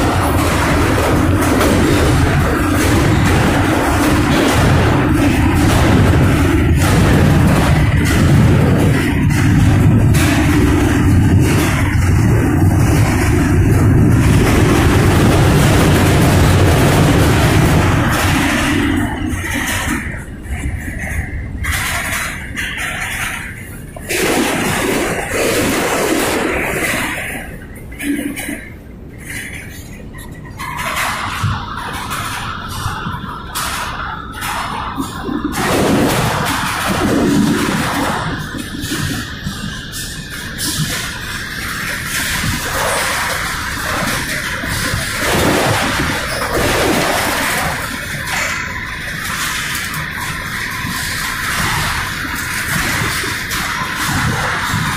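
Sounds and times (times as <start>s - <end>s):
freight boxcar rumbling on rails: 0.0s - 54.9s.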